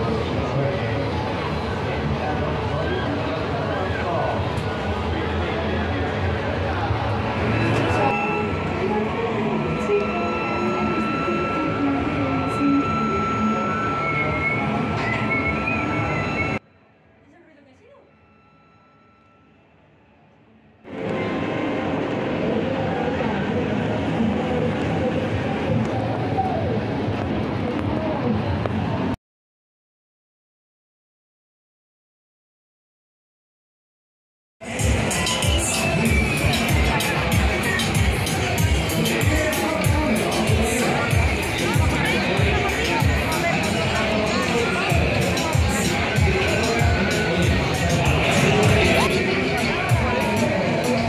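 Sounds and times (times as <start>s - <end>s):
steady high tone: 6.8s - 16.6s, 34.6s - 51.0s
fairground music: 6.9s - 16.6s, 34.6s - 51.0s.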